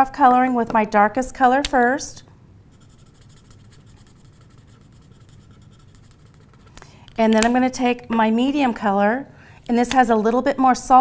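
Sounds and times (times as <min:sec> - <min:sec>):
faint steady hum: 0:00.0 - 0:11.0
marker scratching on card: 0:02.7 - 0:06.8.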